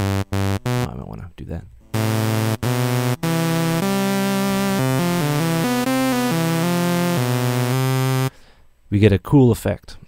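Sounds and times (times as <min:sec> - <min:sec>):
synthesizer playing quick notes: 0:00.0 - 0:00.9, 0:02.0 - 0:08.3
fixed-pitch synth tone: 0:02.0 - 0:08.3.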